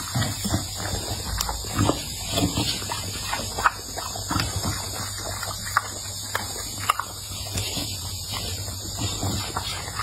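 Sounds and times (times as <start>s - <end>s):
dog chewing and smacking: 0.0s - 10.0s.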